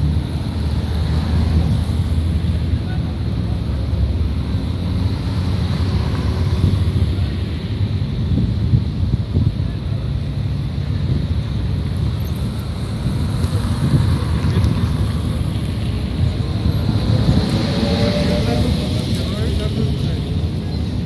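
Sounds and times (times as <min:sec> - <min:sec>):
street traffic passing: 0:00.0 - 0:21.0
vehicle engine: 0:00.0 - 0:21.0
wind rumble on microphone: 0:04.2 - 0:21.0.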